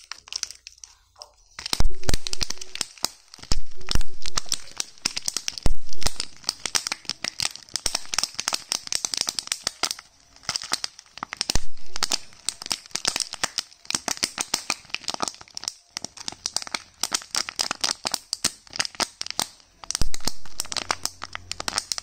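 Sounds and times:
plastic wrapping crackling: 0.0s - 22.0s.

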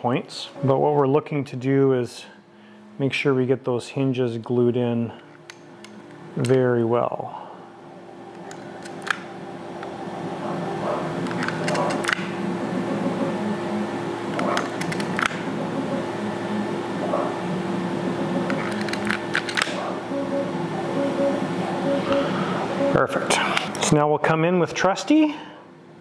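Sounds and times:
steady hum: 0.0s - 26.0s.

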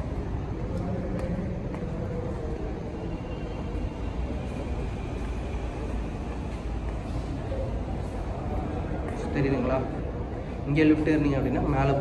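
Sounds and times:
bus station low rumble: 0.0s - 12.0s.

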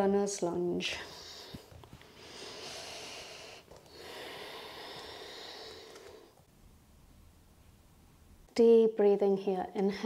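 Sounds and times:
woman breathing deeply: 1.0s - 6.5s.

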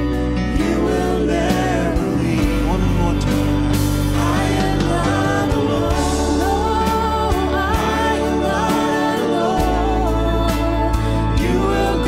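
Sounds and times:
person singing: 0.0s - 12.0s
worship band music: 0.0s - 12.0s.

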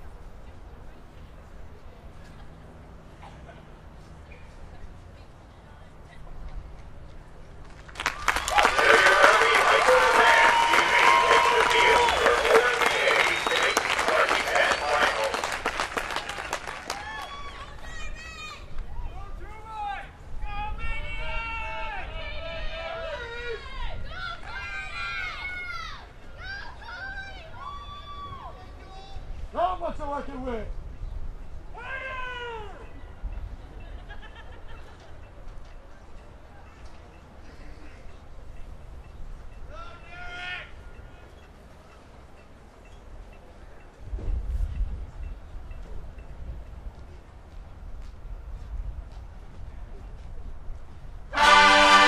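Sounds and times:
stadium crowd noise: 0.0s - 52.0s
crowd applauding: 7.7s - 17.8s
voices yelling: 8.2s - 15.6s.

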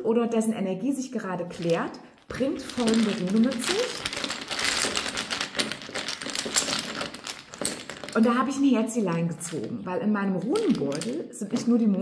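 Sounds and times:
fabric rustling: 1.5s - 8.2s
charms clicking and rattling in a bag: 1.5s - 8.3s, 10.5s - 11.7s.

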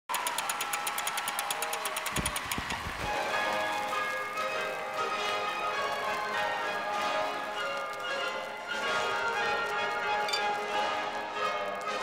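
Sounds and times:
hand crank ratchet clicking: 0.1s - 2.8s
bell-like chiming music: 3.1s - 12.0s.

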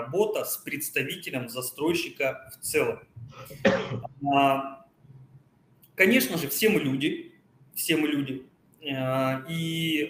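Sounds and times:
man clearing his throat: 3.5s - 4.1s.

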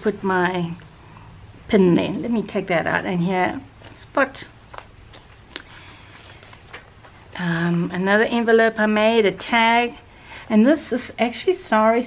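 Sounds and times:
paper page turning: 3.8s - 7.4s.

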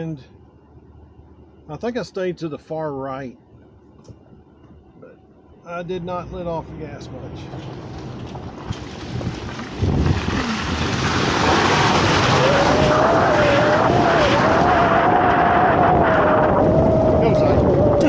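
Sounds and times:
truck engine pulling hard: 5.7s - 18.0s
wind noise: 7.4s - 18.0s
tyre noise: 7.6s - 18.0s
wavering whine: 11.4s - 18.0s.

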